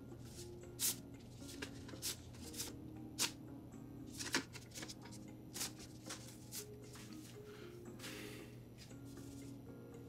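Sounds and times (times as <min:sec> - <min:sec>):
quiet background music: 0:00.0 - 0:10.0
banknotes rustling being counted: 0:04.2 - 0:07.3.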